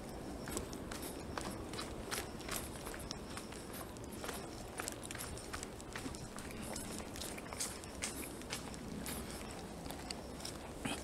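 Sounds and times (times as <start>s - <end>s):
footsteps on stony dirt trail: 0.0s - 11.0s.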